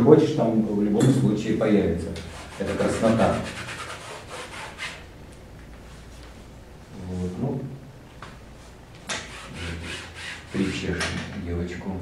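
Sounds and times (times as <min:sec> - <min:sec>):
brush scrubbing on canvas: 0:02.2 - 0:05.0, 0:08.6 - 0:11.0.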